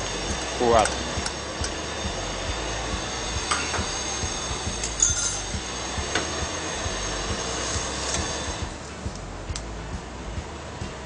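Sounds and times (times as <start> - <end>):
gas wok burner roaring: 0.0 - 11.0.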